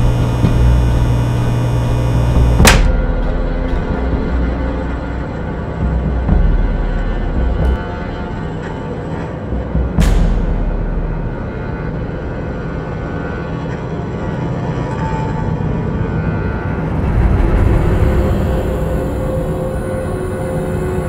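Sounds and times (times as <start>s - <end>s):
suspenseful film score drone: 0.0s - 21.0s.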